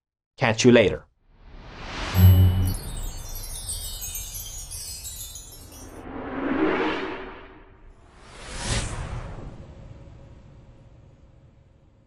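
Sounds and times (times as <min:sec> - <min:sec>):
tinkling chime shimmer: 0:02.2 - 0:06.5
whoosh: 0:05.9 - 0:10.7.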